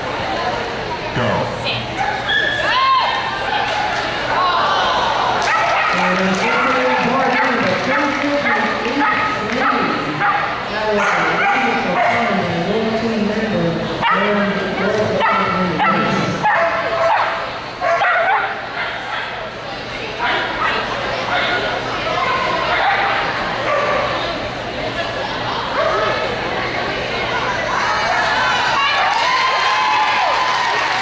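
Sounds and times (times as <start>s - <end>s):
people talking: 0.0s - 17.2s
people's voices: 0.0s - 29.2s
dogs barking and yipping: 5.4s - 6.1s, 8.4s - 12.4s, 15.2s - 19.4s
dog barking and yipping: 15.2s - 19.3s.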